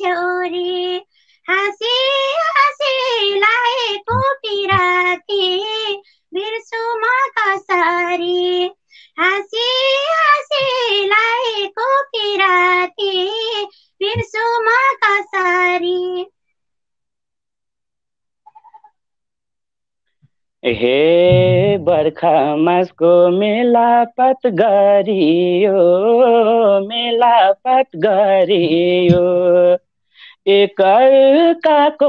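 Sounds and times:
woman singing unaccompanied: 0.0s - 16.3s, 20.8s - 29.8s, 30.4s - 32.0s.

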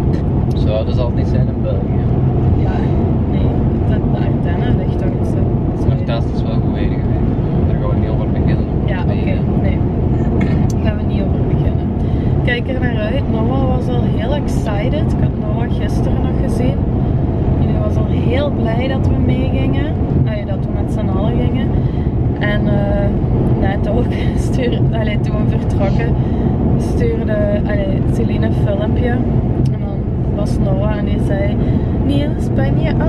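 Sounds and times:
car road and engine noise: 0.0s - 33.0s
person talking: 2.6s - 7.0s, 22.4s - 26.2s.

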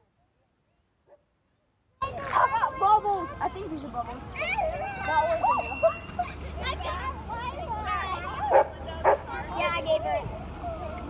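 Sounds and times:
children's voices chattering: 0.0s - 11.0s.

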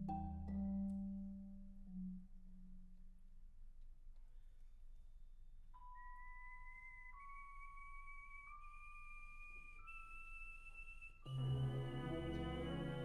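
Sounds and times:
soft flute-like tone: 5.8s - 13.0s.

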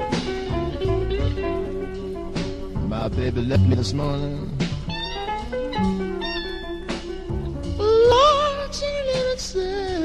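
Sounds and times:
steady bass: 0.0s - 6.2s, 6.9s - 8.8s
held lead guitar notes: 0.0s - 9.9s.

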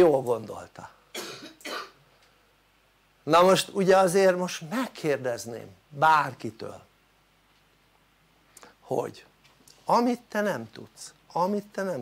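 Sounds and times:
man coughing: 1.1s - 2.0s.

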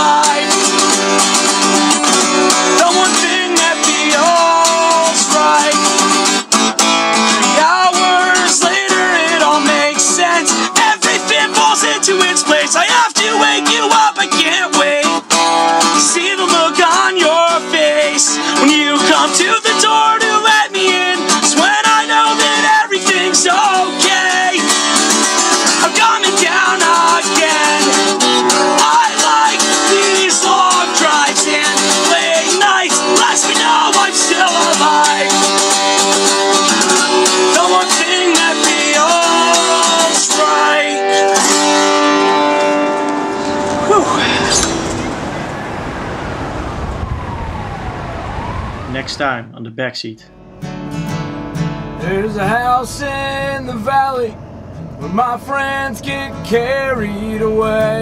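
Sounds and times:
man singing: 0.0s - 1.1s, 2.6s - 6.2s, 7.4s - 35.9s, 36.6s - 41.4s, 52.0s - 54.4s, 55.0s - 58.0s
acoustic guitar strumming: 0.0s - 46.5s, 50.3s - 58.0s.

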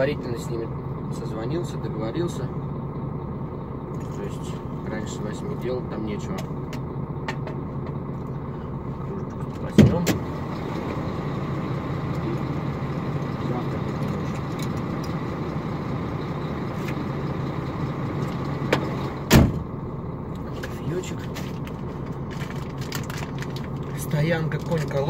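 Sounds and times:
diesel truck engine idling: 0.0s - 25.0s.

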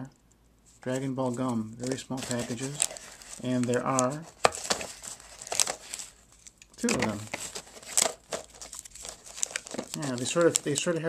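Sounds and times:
snack packets crinkling: 1.3s - 11.0s.

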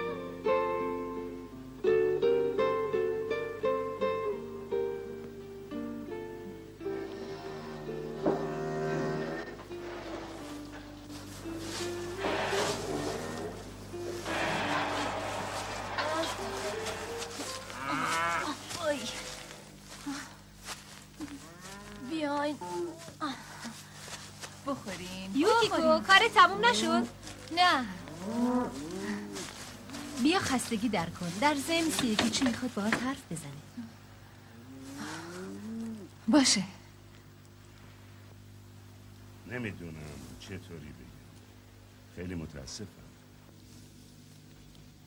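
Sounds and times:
soft background music: 0.0s - 20.2s
cow mooing: 6.9s - 10.0s, 12.2s - 19.7s, 27.9s - 30.3s.

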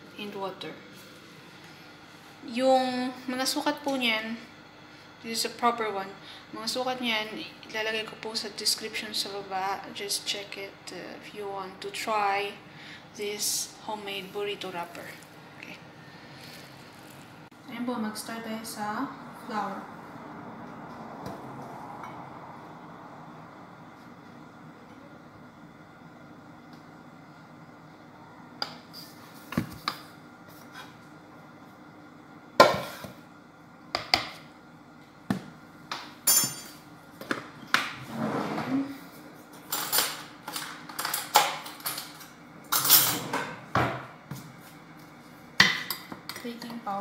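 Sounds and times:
utensils and dishes clinking: 36.2s - 36.8s, 39.7s - 43.6s.

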